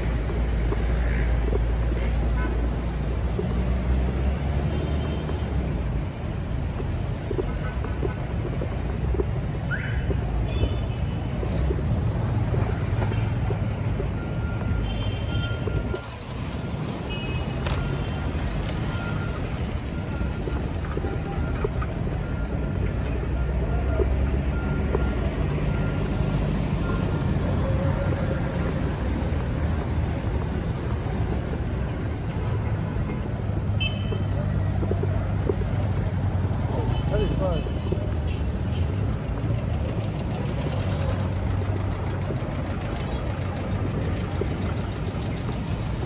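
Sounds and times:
road traffic rumble: 0.0 - 46.0
faint repeating beep: 10.2 - 30.2.

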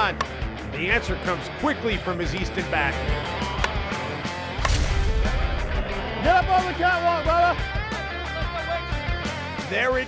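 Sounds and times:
rock music: 0.0 - 10.0
bat cracking a softball: 3.4 - 5.0.

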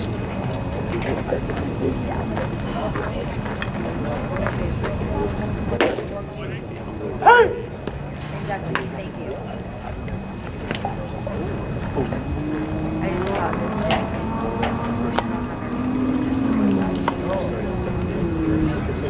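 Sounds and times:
crowd chatter: 0.0 - 19.0
person shouting call: 7.2 - 7.7.

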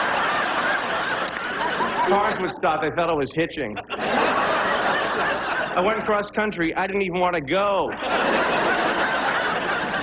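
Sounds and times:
audience laughing: 0.0 - 6.6, 7.5 - 10.0.

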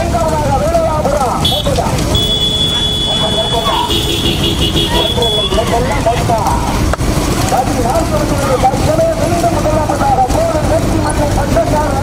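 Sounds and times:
vehicle engine and road rumble: 0.0 - 12.0
men shouting: 0.2 - 6.8, 7.8 - 12.0.

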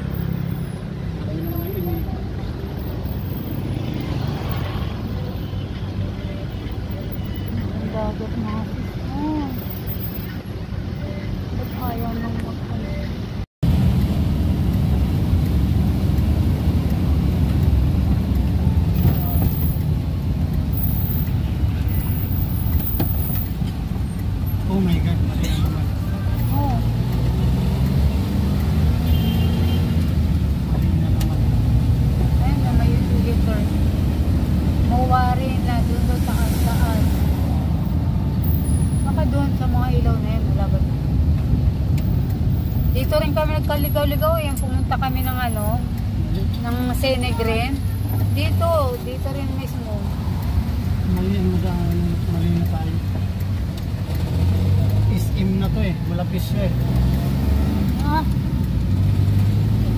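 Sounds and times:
road and engine rumble: 0.0 - 59.9.

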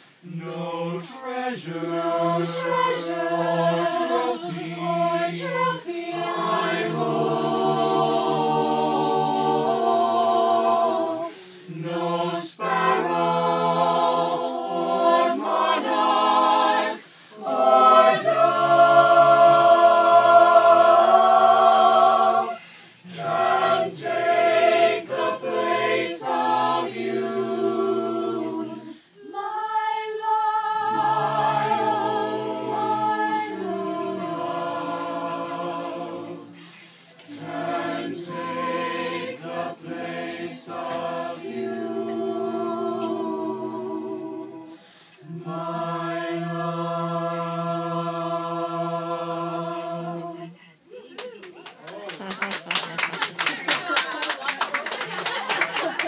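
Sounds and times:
choir singing a cappella: 0.0 - 50.9.

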